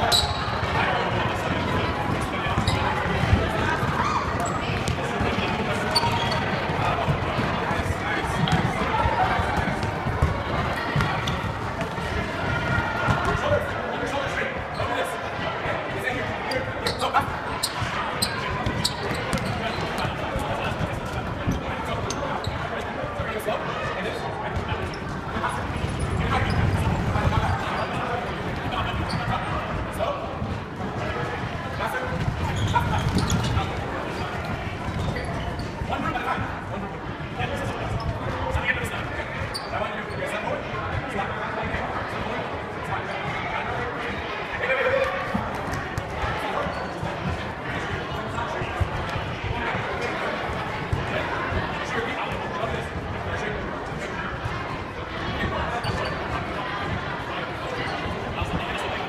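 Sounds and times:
chatter of many people: 0.0s - 59.0s.

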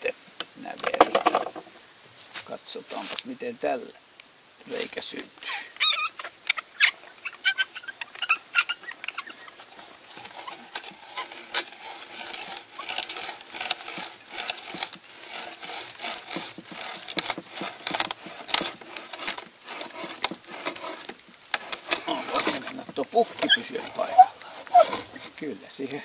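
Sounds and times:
hand brace drilling into wood: 5.7s - 26.0s.

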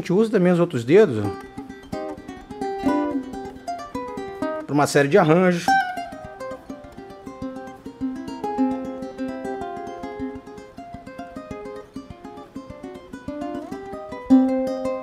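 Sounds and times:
fingerstyle ukulele: 1.1s - 15.0s.

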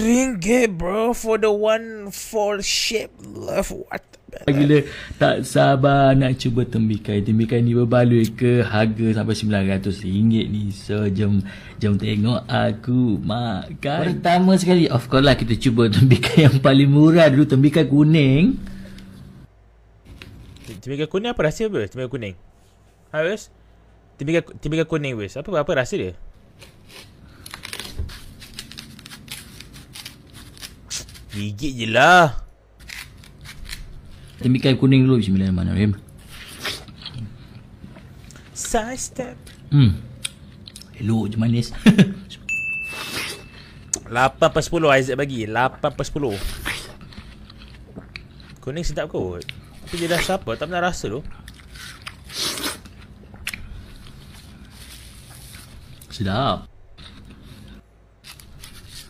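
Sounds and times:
faint steady hum: 0.0s - 59.0s
crunching bite of watermelon: 51.3s - 54.3s.

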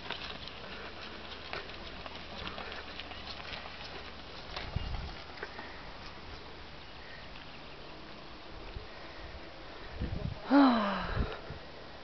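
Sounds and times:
footsteps on tarmac: 0.0s - 9.6s.

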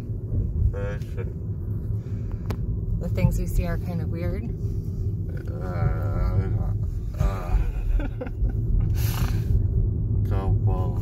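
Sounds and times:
car cabin rumble: 0.0s - 11.0s
person groaning slurred uhh: 5.3s - 8.0s.

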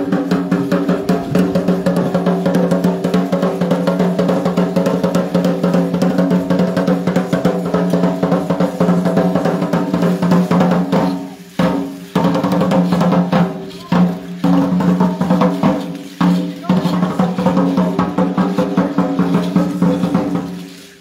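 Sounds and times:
fast drumming: 0.0s - 21.0s.

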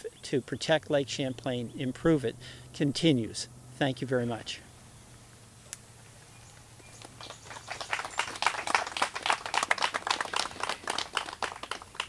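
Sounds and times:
group of people applauding: 7.0s - 12.0s.

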